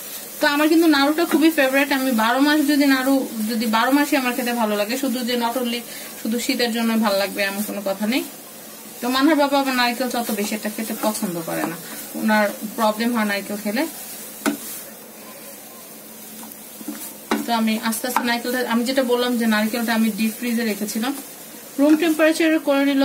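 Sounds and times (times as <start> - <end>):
woman talking: 0.4 - 8.3, 9.0 - 14.0, 17.4 - 21.2, 21.8 - 23.0
spatula scraping frying pan: 9.2 - 12.9, 14.0 - 19.0.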